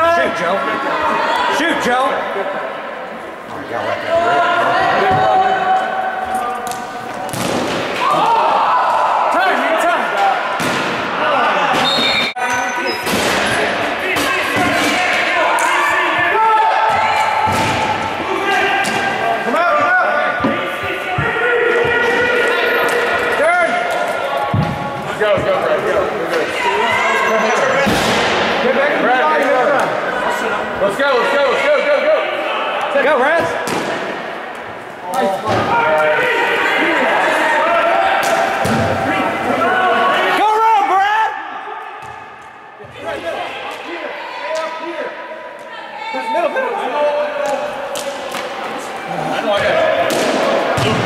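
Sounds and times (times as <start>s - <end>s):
players shouting: 0.0s - 51.0s.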